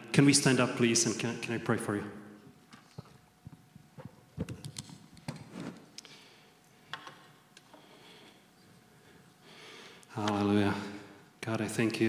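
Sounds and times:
microphone handling knocks and clicks: 0:02.9 - 0:05.8.

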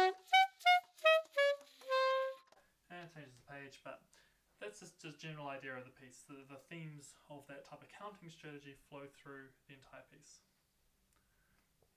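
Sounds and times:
alto saxophone playing: 0:00.0 - 0:02.6.

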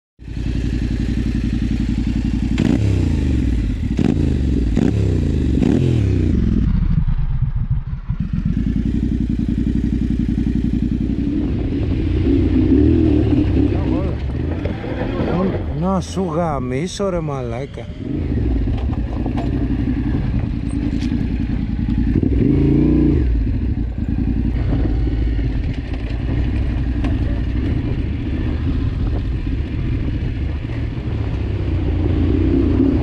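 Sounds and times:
motorcycle engine revving and idling: 0:00.2 - 0:33.0.

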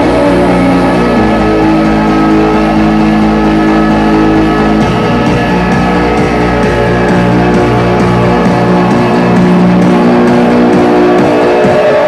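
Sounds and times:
held synthesizer chord: 0:00.0 - 0:12.0.

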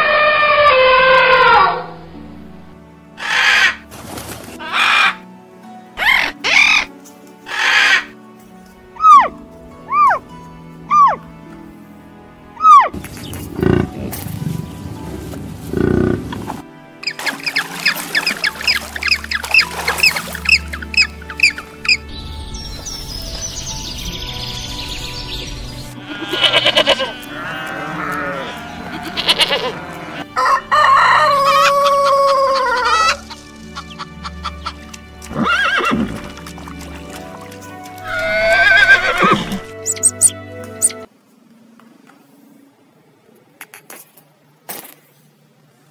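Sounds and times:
background music: 0:00.0 - 0:41.2
animal calls: 0:03.2 - 0:03.8, 0:04.6 - 0:05.2, 0:06.0 - 0:06.9, 0:07.5 - 0:08.1, 0:09.0 - 0:10.2, 0:10.9 - 0:11.2, 0:12.6 - 0:14.2, 0:26.0 - 0:36.3, 0:38.0 - 0:41.1.

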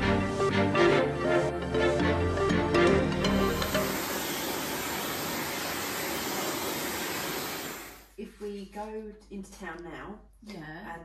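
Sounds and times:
hair dryer blowing: 0:03.4 - 0:08.1.

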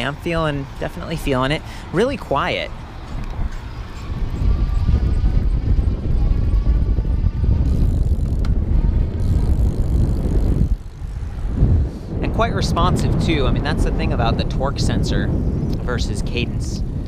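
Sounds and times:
wind on microphone: 0:00.0 - 0:17.0
electric motor whine: 0:02.7 - 0:11.9.

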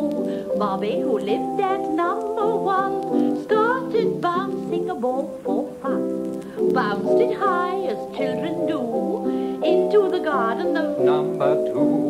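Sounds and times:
children's song with vibrato: 0:00.0 - 0:12.0
instrumental accompaniment: 0:00.0 - 0:12.0.

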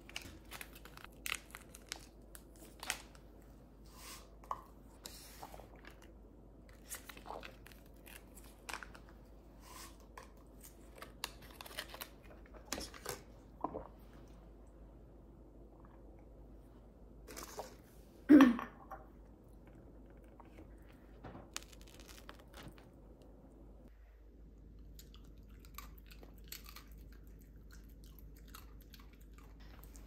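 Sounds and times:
plastic sachet crinkling and tearing: 0:00.0 - 0:03.2, 0:21.6 - 0:22.8.

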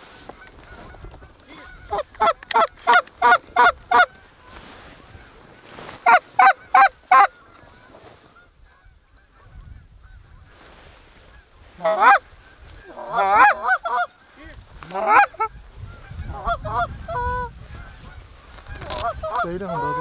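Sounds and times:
goose honking: 0:00.4 - 0:10.5, 0:11.3 - 0:20.0.

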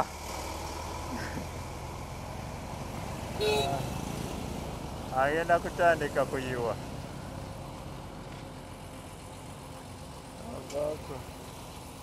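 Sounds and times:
motorcycle moving: 0:00.0 - 0:12.0
truck moving: 0:00.0 - 0:12.0
vehicle engines running: 0:00.0 - 0:12.0.

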